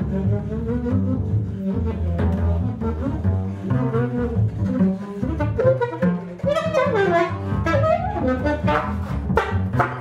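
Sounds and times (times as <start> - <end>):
double bass low notes: 0.0 - 10.0
saxophone bending pitch: 0.0 - 10.0.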